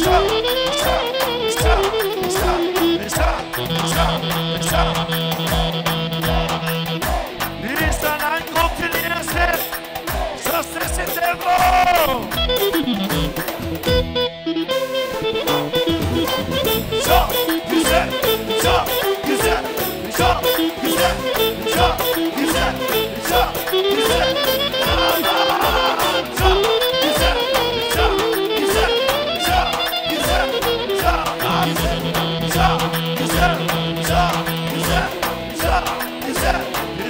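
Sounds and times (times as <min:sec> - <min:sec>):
clarinet melody: 0:00.0 - 0:07.2, 0:12.2 - 0:35.3
drum kit: 0:00.0 - 0:14.2, 0:15.4 - 0:37.0
deep drum beat: 0:01.6 - 0:09.5, 0:26.4 - 0:27.4, 0:31.0 - 0:36.6
kick drum beats: 0:26.4 - 0:27.4, 0:28.0 - 0:36.6.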